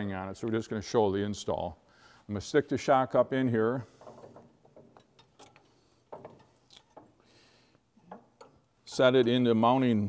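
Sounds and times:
metal clicks and knocks: 0:03.8 - 0:07.2, 0:08.0 - 0:09.3.

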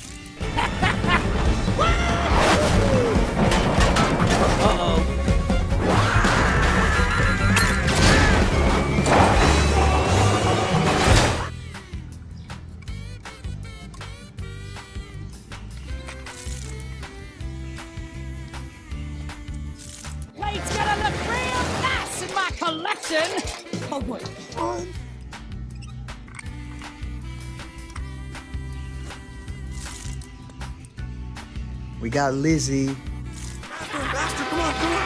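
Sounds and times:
cartoon music: 0:04.4 - 0:12.3
quiet background music: 0:07.5 - 0:35.0.

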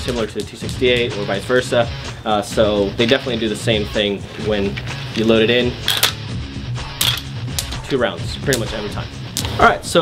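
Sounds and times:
guitar background music: 0:00.0 - 0:10.0.

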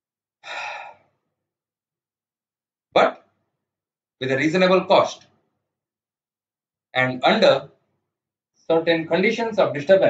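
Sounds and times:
man breathing into microphone: 0:00.4 - 0:01.0
man speaking: 0:03.0 - 0:03.2, 0:04.2 - 0:05.2, 0:07.0 - 0:07.7, 0:08.7 - 0:10.0.

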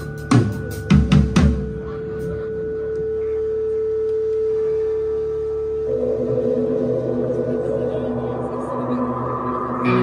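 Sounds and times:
steady electronic tone: 0:01.8 - 0:10.0.

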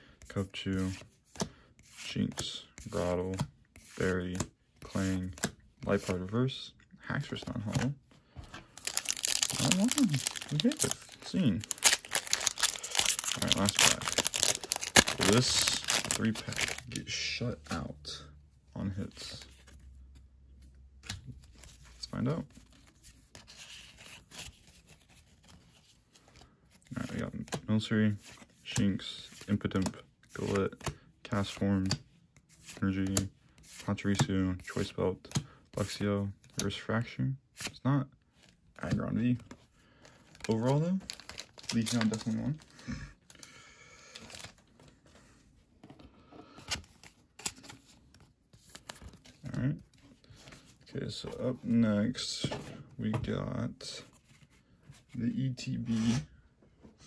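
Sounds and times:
cards sliding and tapping: 0:00.8 - 0:06.2
cards sliding and scraping on desk: 0:55.9 - 0:56.3.

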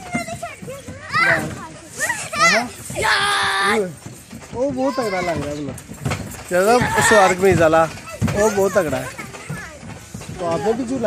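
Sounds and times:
children shouting and calling out: 0:00.0 - 0:04.0, 0:04.6 - 0:05.7, 0:06.7 - 0:10.8.

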